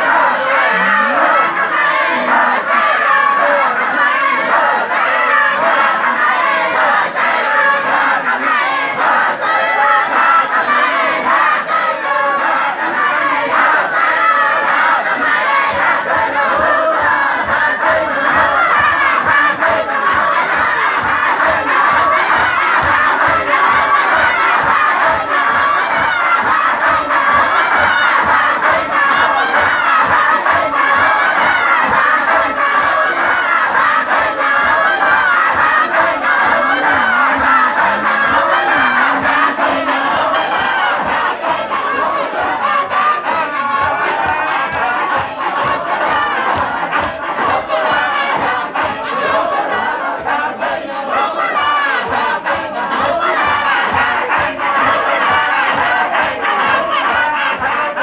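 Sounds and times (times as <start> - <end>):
men chanting in unison: 0.0 - 58.0.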